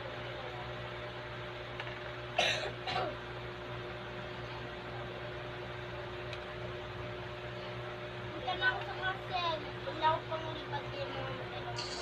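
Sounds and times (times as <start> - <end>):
steady low hum: 0.0 - 12.0
person clearing throat coughing: 2.4 - 3.2.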